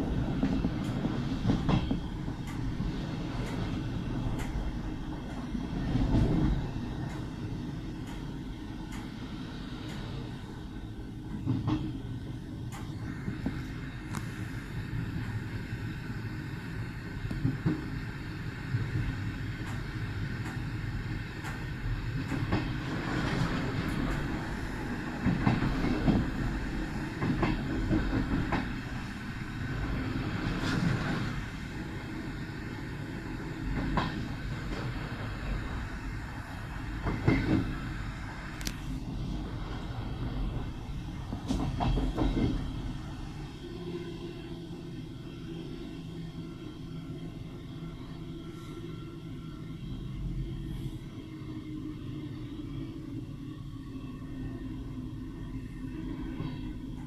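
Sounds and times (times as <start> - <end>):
railway carriage rumbling: 0.0 - 57.0.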